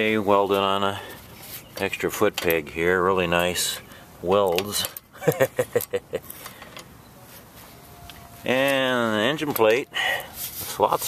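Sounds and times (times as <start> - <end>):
man chuckling: 5.2 - 6.3.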